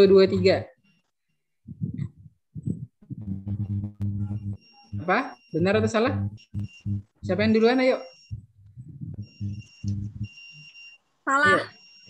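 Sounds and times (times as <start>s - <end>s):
low muffled pulses: 1.6s - 10.7s
high-pitched electronic tone: 3.1s - 7.6s, 8.2s - 10.4s.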